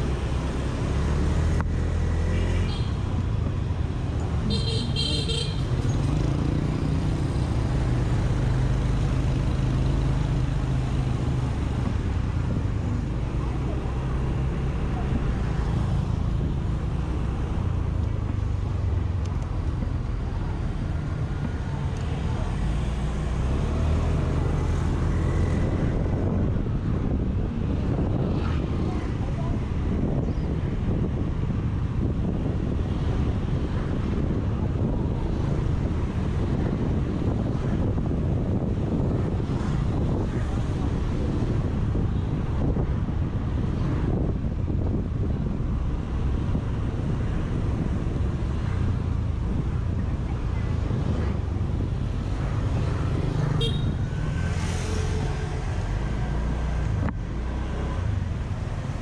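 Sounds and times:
traffic noise: 0.0 - 59.0
vehicle horn beeping: 4.5 - 5.6, 53.6 - 54.0.

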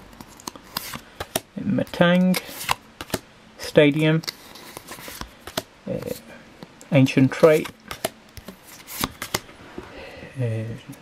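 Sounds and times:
cards flipped by hand: 0.1 - 3.2, 3.9 - 6.2, 7.3 - 9.5
cards snapping: 0.2 - 3.2, 4.2 - 6.2, 7.4 - 9.5.

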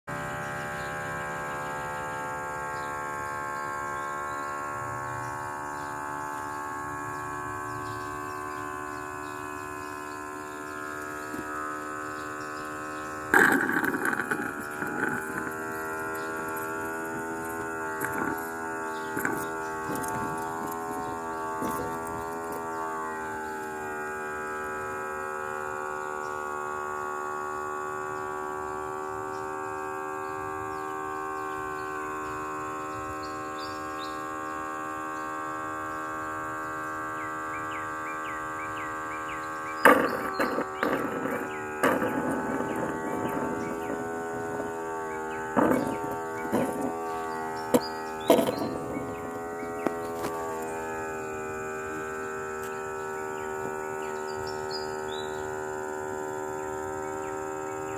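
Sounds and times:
steady hum of held tones: 0.0 - 57.9
scattered clicks and knocks: 13.3 - 22.7, 39.9 - 50.8.

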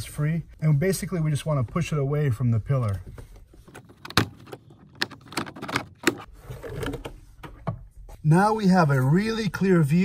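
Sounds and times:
plastic scraping and rustling: 3.2 - 7.5.

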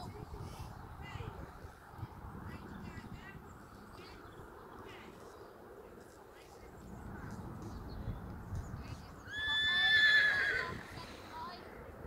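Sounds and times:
horse whinnying: 9.3 - 11.0.

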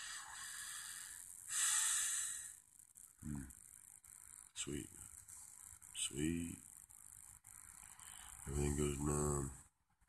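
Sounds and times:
person breathing noisily: 0.0 - 2.6.

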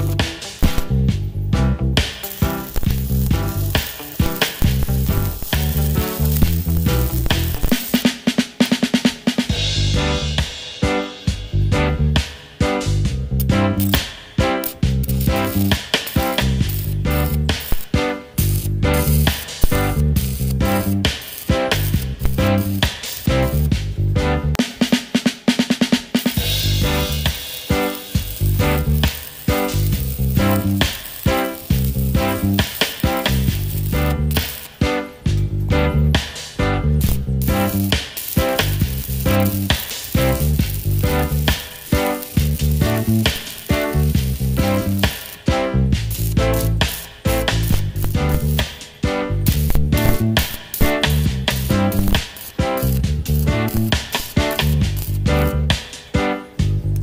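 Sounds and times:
welding arc sizzling: 0.0 - 10.5, 12.8 - 56.2
music with drums and bass: 0.0 - 57.0.

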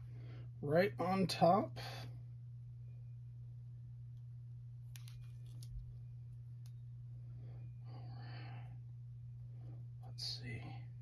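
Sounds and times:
steady low hum: 0.0 - 11.0
cards and plastic sleeve rustling: 4.9 - 6.1.

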